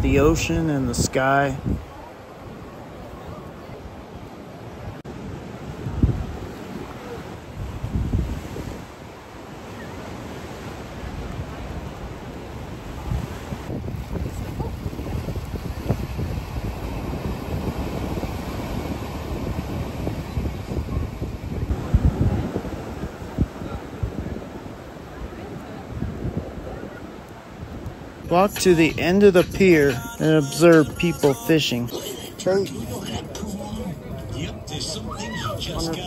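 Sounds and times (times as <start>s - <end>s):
wind buffeting microphone: 0.0s - 4.0s, 4.8s - 29.9s
ocean surf: 0.0s - 36.0s.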